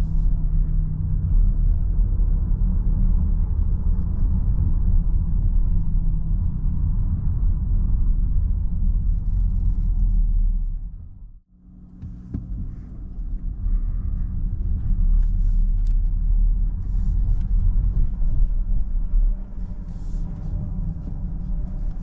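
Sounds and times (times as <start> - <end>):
car cabin rumble: 7.1 - 22.0.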